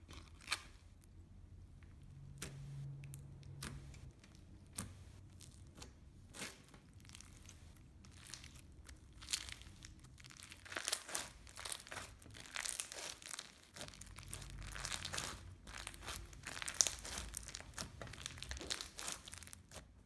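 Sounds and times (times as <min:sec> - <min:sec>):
slime crackling and crunching: 0:00.0 - 0:01.1, 0:02.2 - 0:20.0.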